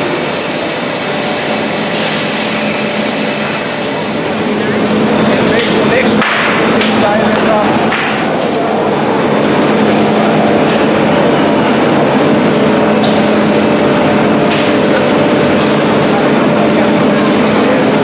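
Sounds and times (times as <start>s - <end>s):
factory machinery hum: 0.0s - 18.0s.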